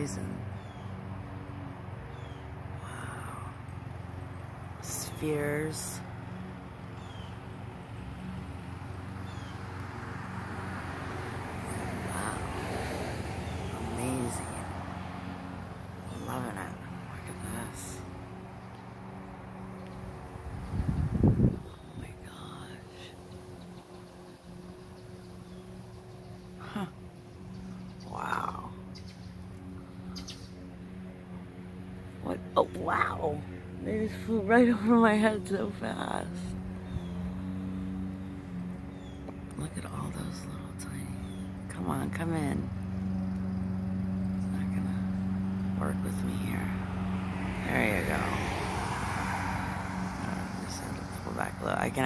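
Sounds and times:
birds calling: 0.0s - 47.2s
faint outdoor background noise: 0.0s - 52.0s
steady low hum: 0.0s - 52.0s.

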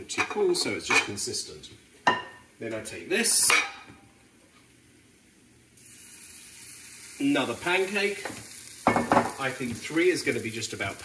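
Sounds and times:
batter sizzling in frying pan: 5.2s - 11.0s.

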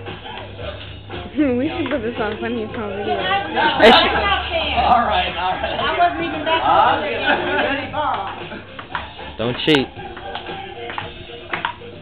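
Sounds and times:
background music: 0.0s - 12.0s
ping-pong ball clicks: 8.8s - 11.8s.

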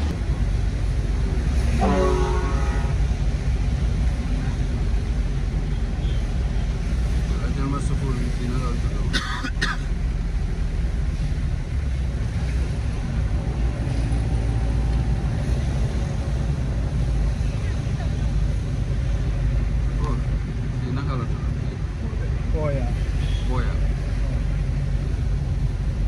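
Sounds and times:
engine and road rumble: 0.0s - 26.0s
tyre noise on wet road: 0.0s - 26.0s.

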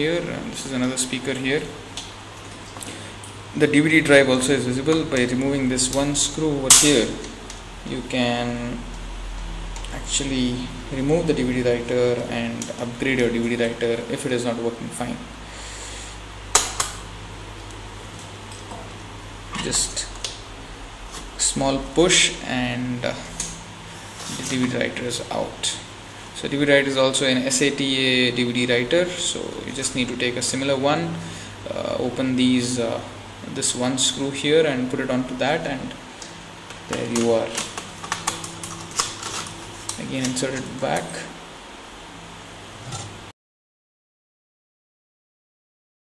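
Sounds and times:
low electrical hum: 0.0s - 43.3s.

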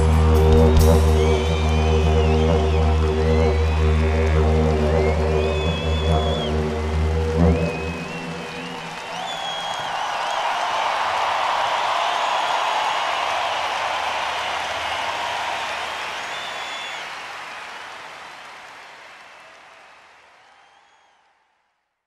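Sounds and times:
high whistles: 0.0s - 17.8s, 20.4s - 21.2s
stadium crowd cheering and applauding: 0.0s - 22.0s.

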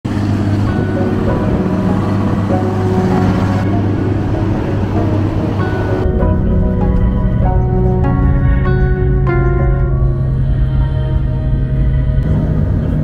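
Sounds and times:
calm music of held notes: 0.1s - 13.0s
loud rumbling noise: 0.1s - 13.0s.

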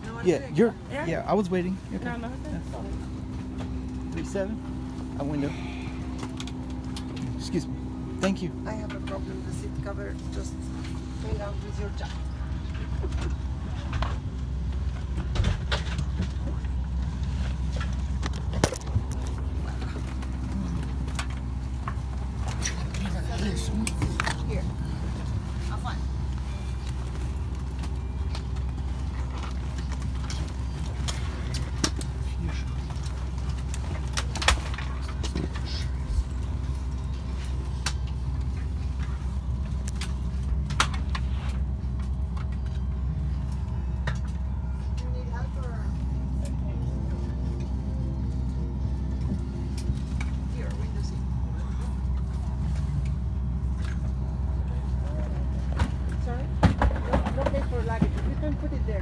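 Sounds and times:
cabin ventilation hum: 0.0s - 59.0s
faint passenger chatter: 0.0s - 59.0s.

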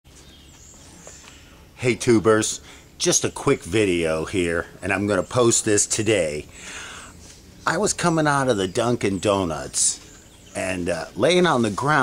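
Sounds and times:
distant birds chirping: 0.1s - 12.0s.

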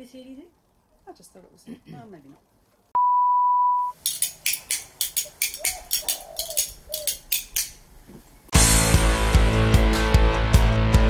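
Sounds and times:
steady electronic beep: 3.0s - 4.0s
loud guitar music: 8.6s - 11.0s.

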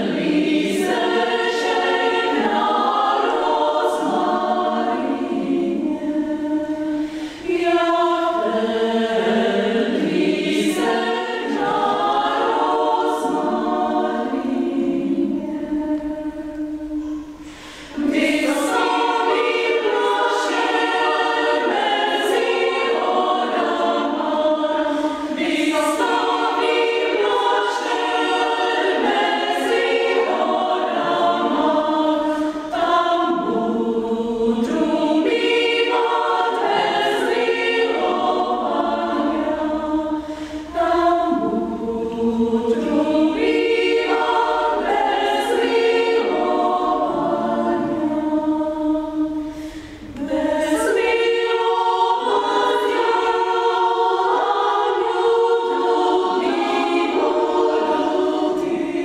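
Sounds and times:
women's choir singing a cappella: 0.0s - 59.0s
short breath: 7.0s - 7.4s, 17.0s - 18.0s, 40.2s - 40.7s, 49.4s - 50.2s.

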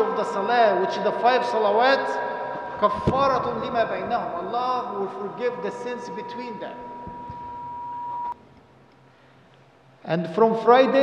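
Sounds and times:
microphone handling thumps: 2.9s - 4.3s
microphone feedback ring: 6.0s - 8.4s.

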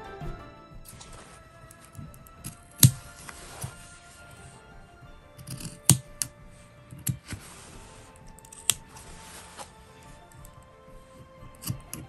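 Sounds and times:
faint background music: 0.0s - 12.0s
hands handling fabric: 0.9s - 12.0s.

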